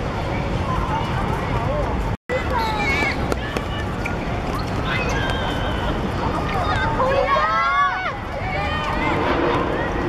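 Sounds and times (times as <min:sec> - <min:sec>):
outdoor background noise: 0:00.0 - 0:10.0
children calling: 0:02.3 - 0:10.0.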